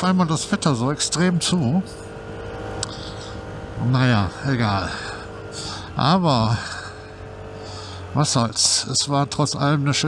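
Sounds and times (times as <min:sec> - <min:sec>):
road and wind noise: 0:00.0 - 0:10.0
scooter engine droning: 0:00.0 - 0:10.0.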